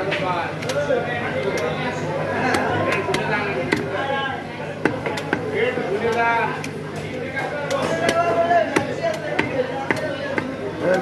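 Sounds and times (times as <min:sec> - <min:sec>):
cleaver chopping meat on wood: 0:02.4 - 0:04.0, 0:04.8 - 0:06.8, 0:07.6 - 0:11.0.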